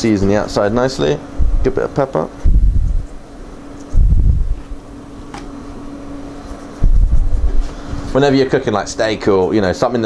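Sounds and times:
steady low hum: 0:00.0 - 0:10.0
microphone handling rumble: 0:01.3 - 0:01.8, 0:02.4 - 0:03.2, 0:03.8 - 0:05.6, 0:06.8 - 0:08.3.

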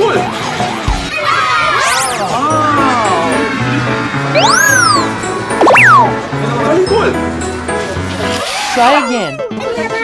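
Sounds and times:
children shouting: 0:01.1 - 0:02.0
rising and falling sweep tone: 0:03.1 - 0:06.2.

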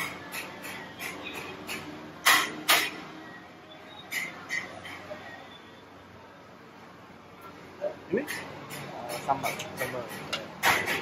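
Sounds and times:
loud metal clanks: 0:00.0 - 0:03.0, 0:08.2 - 0:11.0.

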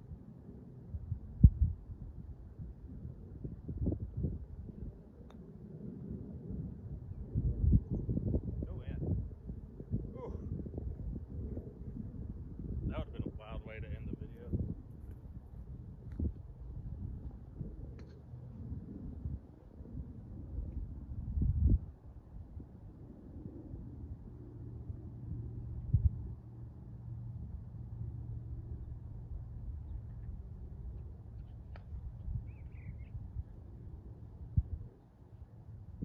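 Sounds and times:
wind buffeting microphone: 0:00.9 - 0:05.1, 0:05.8 - 0:26.5, 0:28.3 - 0:35.0.

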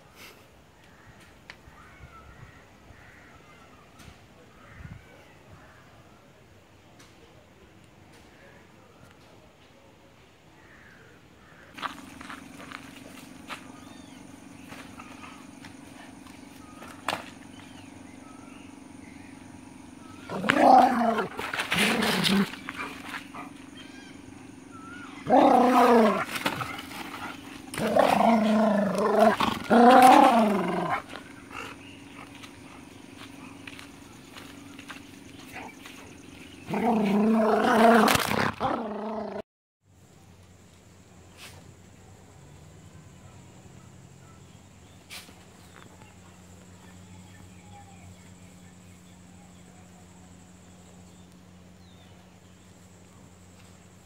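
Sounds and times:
steady low hum: 0:10.6 - 0:54.0
noisy scuffle: 0:11.8 - 0:17.8
palm frond scraping on dirt: 0:11.8 - 0:19.2, 0:20.2 - 0:38.7
dog play growling: 0:20.0 - 0:39.4.

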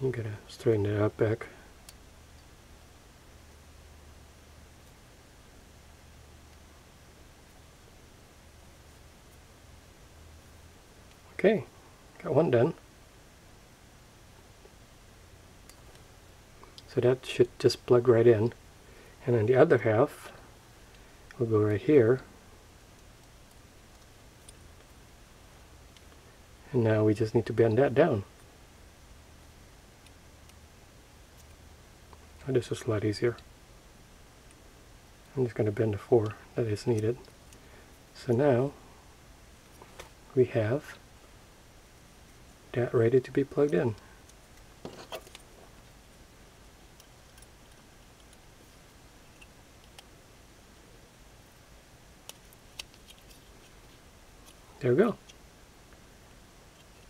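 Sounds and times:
faint small plastic clicks: 0:46.9 - 0:50.2, 0:51.4 - 0:54.6.

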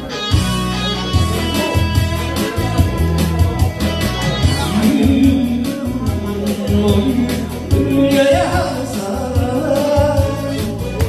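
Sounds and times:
backing music with steady beat: 0:00.0 - 0:11.0
man singing into microphone: 0:04.4 - 0:11.0.

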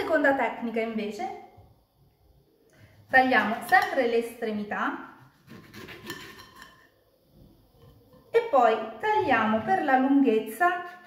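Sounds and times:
knife and fork scraping plate: 0:05.2 - 0:06.9.

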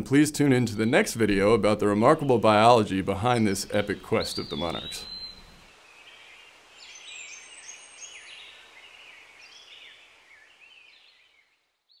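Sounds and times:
background hiss: 0:00.0 - 0:12.0
faint birds chirping: 0:00.1 - 0:12.0.

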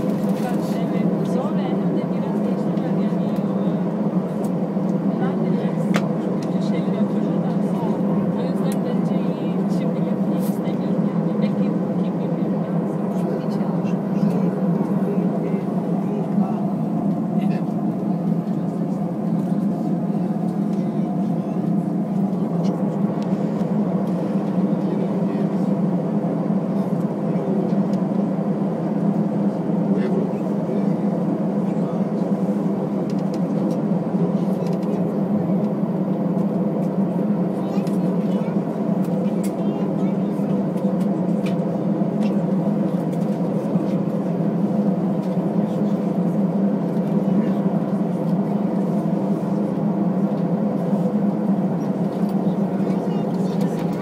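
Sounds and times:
jet engines humming at idle: 0:00.0 - 0:54.0.

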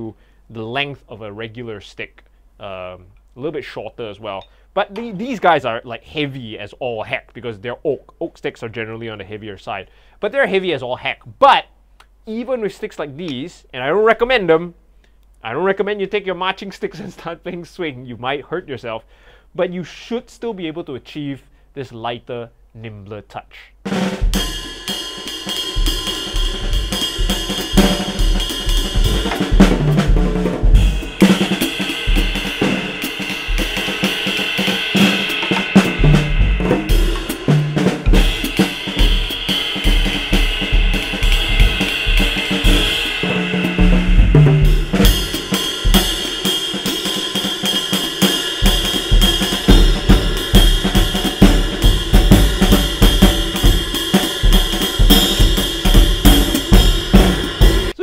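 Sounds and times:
tom fills: 0:23.8 - 0:58.0
bass drum hits: 0:23.9 - 0:46.6, 0:48.6 - 0:58.0
snare drum strokes: 0:23.9 - 0:58.0
cymbal wash: 0:24.1 - 0:58.0.

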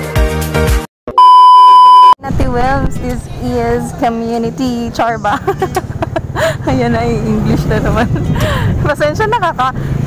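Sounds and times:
high test-tone beep: 0:01.1 - 0:02.2.

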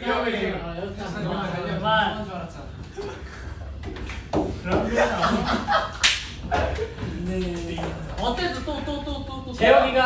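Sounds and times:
sharp slap: 0:06.0 - 0:06.7.

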